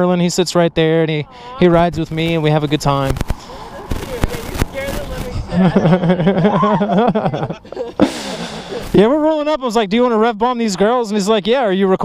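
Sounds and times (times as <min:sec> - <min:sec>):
person speaking: 0:01.2 - 0:09.9
person laughing: 0:05.3 - 0:09.0.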